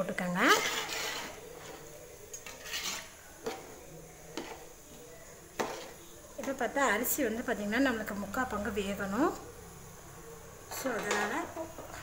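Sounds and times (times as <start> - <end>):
metal spatula scraping pot: 0.1 - 7.2, 10.7 - 11.7.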